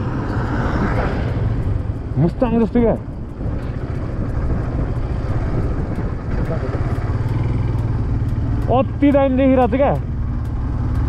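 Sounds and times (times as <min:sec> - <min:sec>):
motorcycle engine running: 0:00.0 - 0:11.0
wind rushing over microphone: 0:00.0 - 0:11.0.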